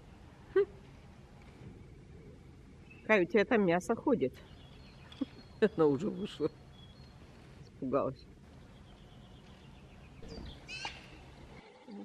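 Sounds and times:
magpie calling: 10.2s - 11.2s.

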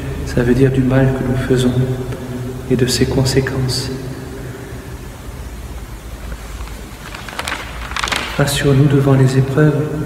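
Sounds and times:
low rumble with room hiss: 0.0s - 10.0s.

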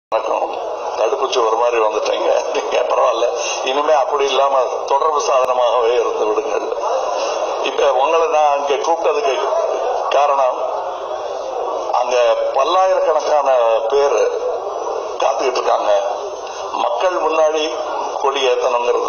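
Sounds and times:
man talking into microphone: 0.1s - 19.0s.

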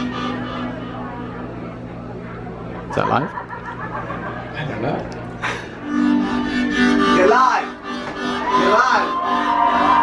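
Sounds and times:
harmonica playing: 0.0s - 1.3s, 5.4s - 10.0s.

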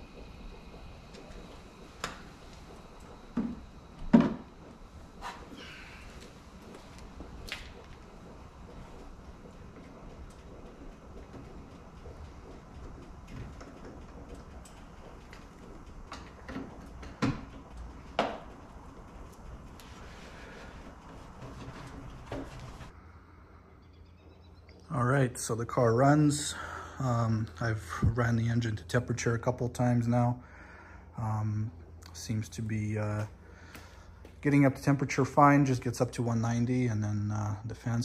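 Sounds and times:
low garage room rumble: 0.0s - 38.0s.

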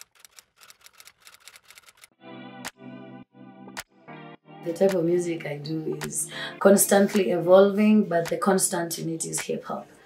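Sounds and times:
rapid keystroke clicks: 0.0s - 2.1s.

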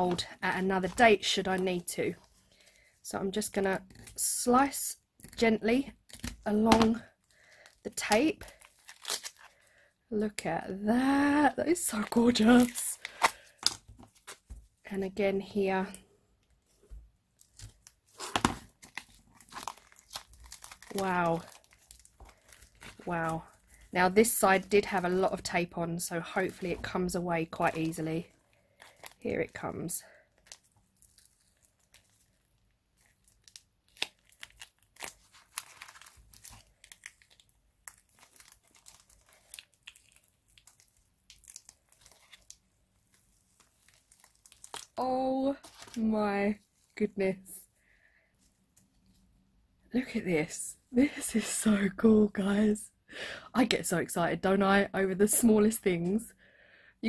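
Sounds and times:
tape crinkling and tearing: 5.2s - 9.7s, 11.9s - 14.6s, 17.4s - 25.3s, 26.4s - 45.0s, 45.6s - 46.0s
tape and silicone peeling: 7.9s - 9.6s
sharp crackles and snaps: 17.4s - 23.9s, 30.4s - 45.0s.

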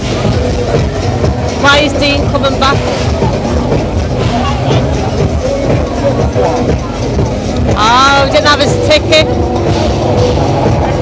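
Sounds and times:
amplified ride music with bass: 0.0s - 11.0s
crowd voices: 0.0s - 11.0s.

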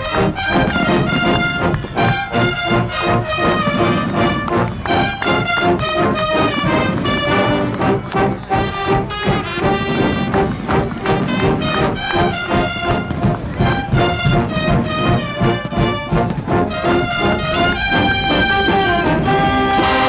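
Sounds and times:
brass band playing: 0.0s - 20.0s.

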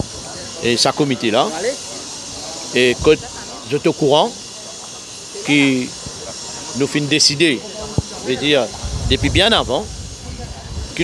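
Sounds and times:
steady high hiss: 0.0s - 11.0s
man speaking: 2.7s - 4.3s, 5.5s - 5.9s.

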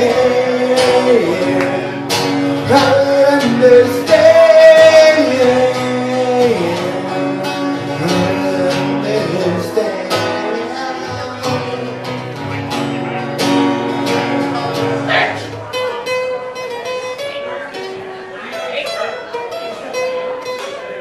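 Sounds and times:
acoustic guitar strumming: 0.0s - 21.0s.

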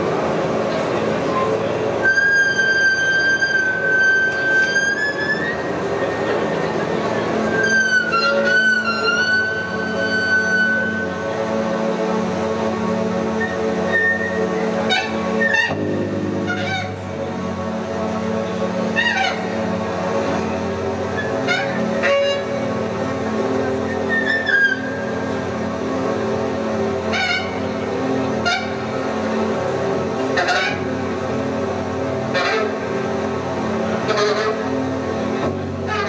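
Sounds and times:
experimental band droning: 0.0s - 36.0s.

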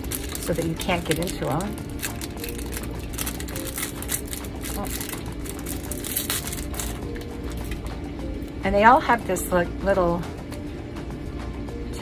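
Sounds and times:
packaging crackling: 0.0s - 7.8s.

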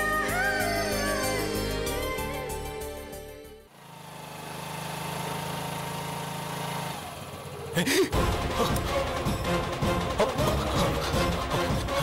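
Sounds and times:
theme music: 0.0s - 3.7s, 8.1s - 12.0s.

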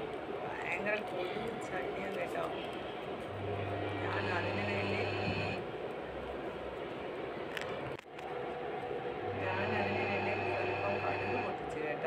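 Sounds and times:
induction cooktop humming: 3.3s - 5.9s, 9.1s - 12.0s.

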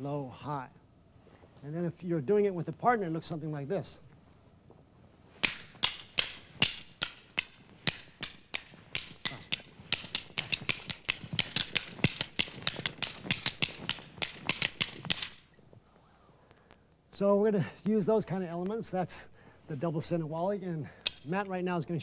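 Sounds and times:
rattan sticks clacking: 5.4s - 15.6s, 21.0s - 21.3s.

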